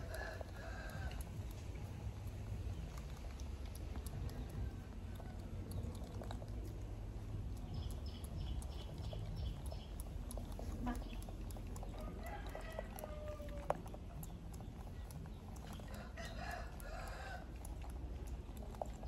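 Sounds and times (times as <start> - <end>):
faint crackling clicks: 0.0 - 19.0.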